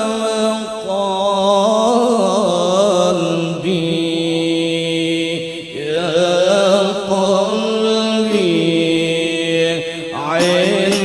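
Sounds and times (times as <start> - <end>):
chanting voices holding long notes: 0.0 - 11.0.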